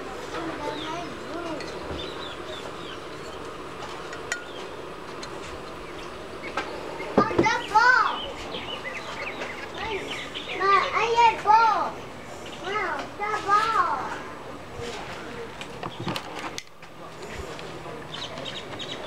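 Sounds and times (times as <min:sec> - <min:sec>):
children calling out and chattering: 0:00.0 - 0:05.0, 0:06.0 - 0:15.8
low background murmur: 0:00.0 - 0:19.0.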